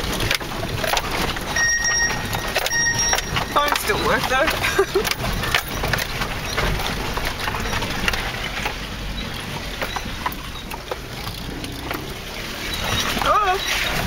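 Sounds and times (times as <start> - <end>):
knocks and rattles: 0.0 - 14.0
vehicle rumble: 0.0 - 14.0.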